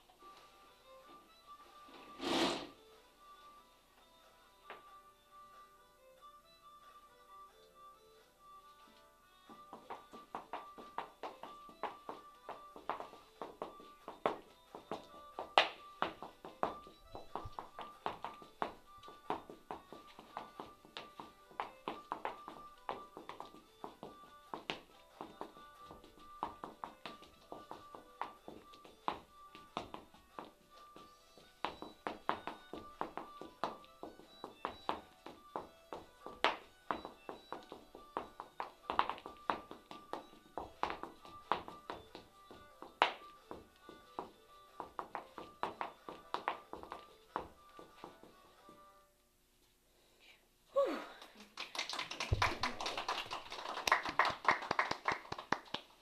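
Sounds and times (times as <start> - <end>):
dancing feet tapping on floor: 4.6 - 4.9, 8.8 - 48.9, 51.8 - 56.0
recorded dance music: 8.9 - 48.9.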